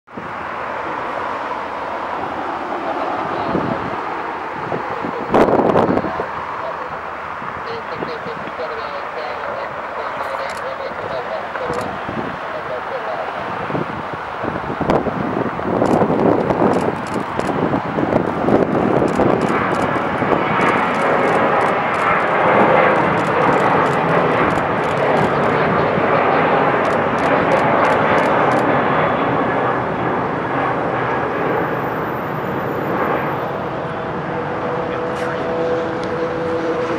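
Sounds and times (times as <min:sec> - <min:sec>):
jet airliner taking off: 0:00.1 - 0:36.9.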